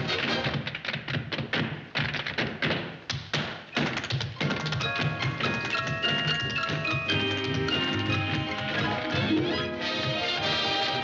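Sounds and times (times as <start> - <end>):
tap shoes striking floor: 0.4 - 9.0
band music: 4.8 - 11.0.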